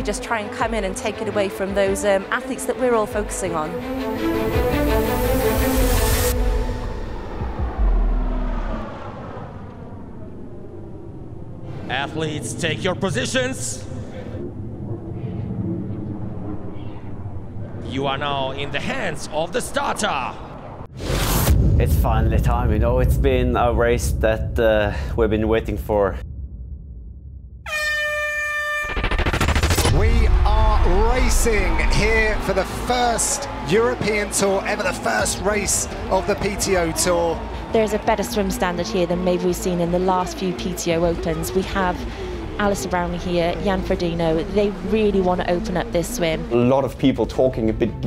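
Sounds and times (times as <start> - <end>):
steady low rumble: 6.0 - 27.6, 29.0 - 33.6
deep low boom: 6.3 - 18.6, 20.4 - 27.7, 28.9 - 32.9
air horn blast: 27.6 - 30.3.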